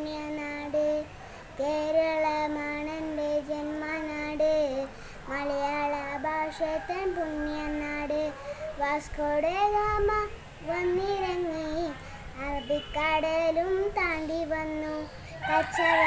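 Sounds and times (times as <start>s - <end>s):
girl singing unaccompanied: 0.0s - 16.0s.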